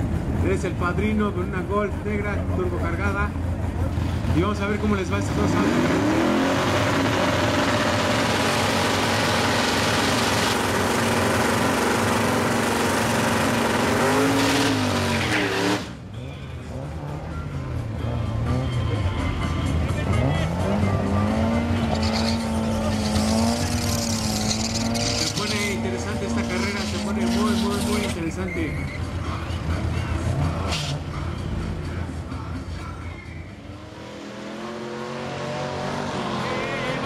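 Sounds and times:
car engine revving: 2.1 - 32.5, 33.6 - 37.0
tyres squealing: 21.8 - 29.2.

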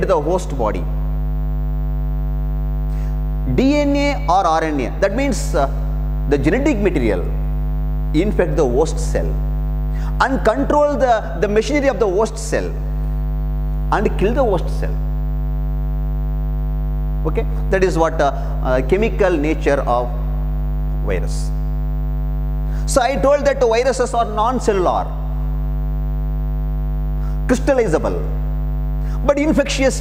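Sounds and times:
electrical mains hum: 0.0 - 30.0.

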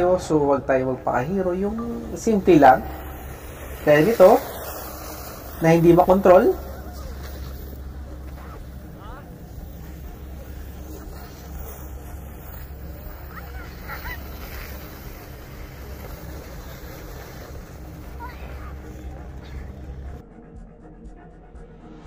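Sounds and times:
distant voices and calls: 2.1 - 20.2.

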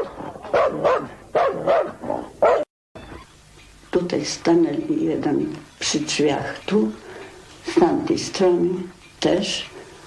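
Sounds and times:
dog barking: 0.0 - 2.7.

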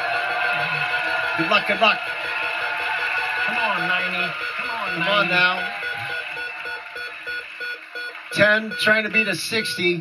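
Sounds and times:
game show wheel ticking: 0.0 - 10.0.

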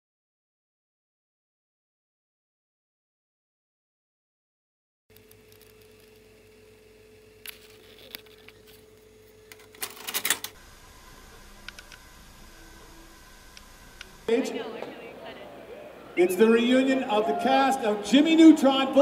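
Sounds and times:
vcr motor hum: 5.1 - 16.2
tape mechanism clicking and clunking: 9.5 - 10.6
faint held tone: 12.1 - 16.6.

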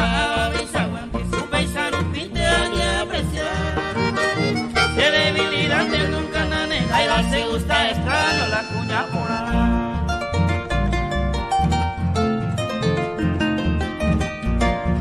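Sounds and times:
acoustic guitars: 0.0 - 15.0
steady bass beat: 0.0 - 15.0
sustained melody line: 0.0 - 15.0.

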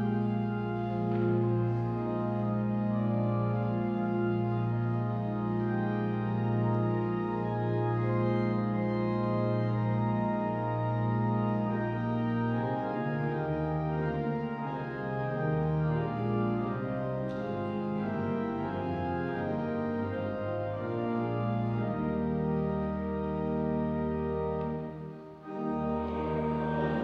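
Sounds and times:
pipe organ playing a hymn: 0.0 - 27.0.

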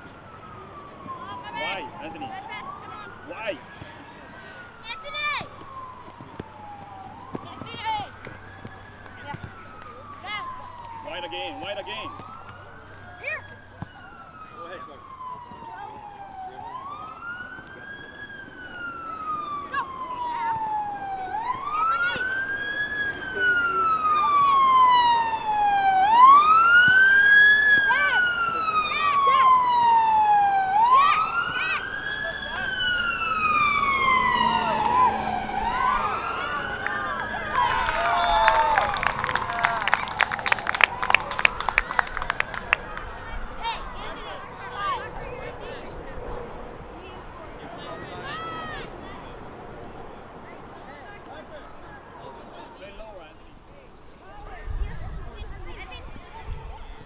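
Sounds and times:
siren wailing: 0.0 - 53.0.

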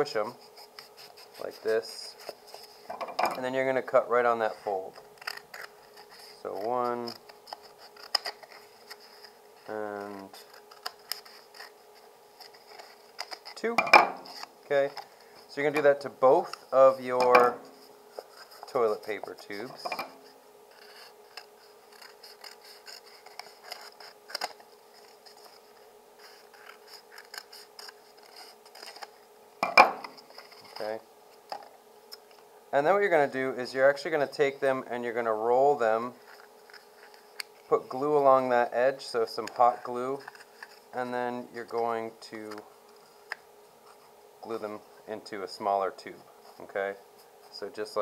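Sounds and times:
cardboard rustling: 30.0 - 31.0.

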